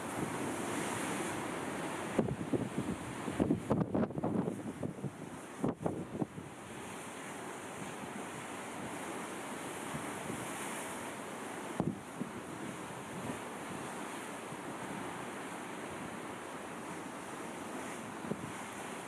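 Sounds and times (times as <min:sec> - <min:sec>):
rushing wind: 0:00.0 - 0:06.5
sea surf: 0:00.0 - 0:19.0
wind buffeting microphone: 0:02.1 - 0:06.5.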